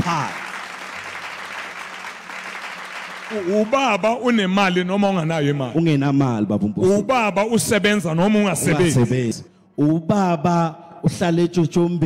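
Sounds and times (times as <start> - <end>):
audience applauding: 0.0 - 4.3.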